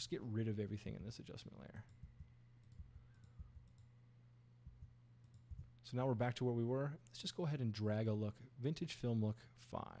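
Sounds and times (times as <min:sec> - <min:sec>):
low steady hum: 0:00.0 - 0:10.0
keyboard and mouse clicks: 0:01.8 - 0:03.9, 0:04.7 - 0:05.8.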